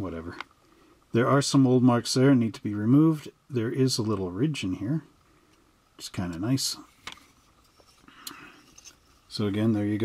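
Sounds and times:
light plastic rustle: 6.3 - 10.0.

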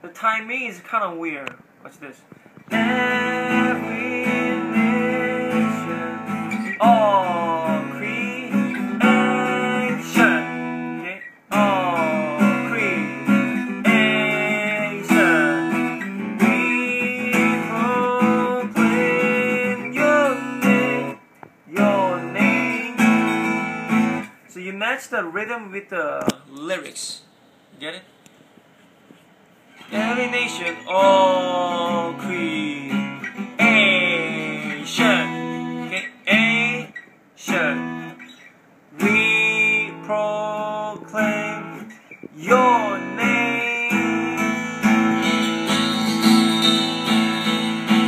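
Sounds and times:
acoustic guitar strumming: 2.6 - 24.4, 29.8 - 48.0.

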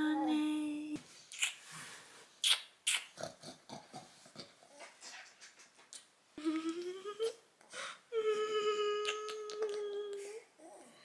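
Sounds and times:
woman humming: 0.0 - 1.0, 6.4 - 7.4, 8.1 - 10.4.

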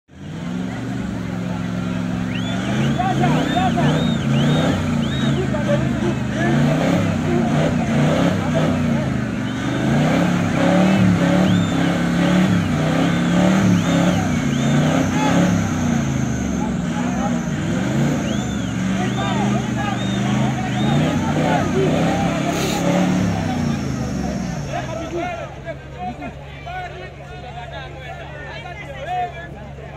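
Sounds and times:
pickup engine revving: 0.1 - 26.4.

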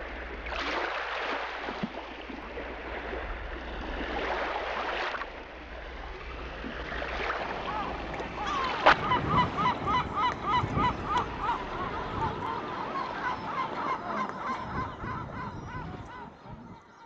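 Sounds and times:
gulls yelping calls: 7.3 - 17.0.

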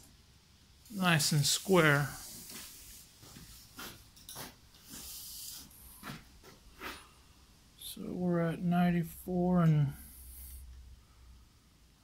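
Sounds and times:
brief high hiss: 4.9 - 5.8.

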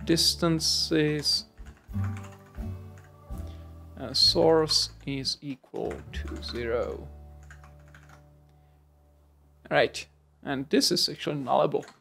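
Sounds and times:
computer keyboard clicks: 7.4 - 8.2.

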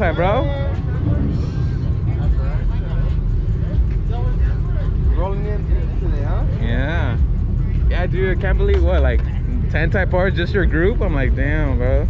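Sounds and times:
people talking: 0.0 - 12.0
steady low rumble: 0.0 - 12.0.

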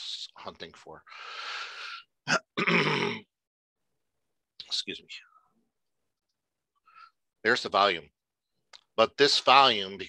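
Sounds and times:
person clearing throat: 2.2 - 3.3.

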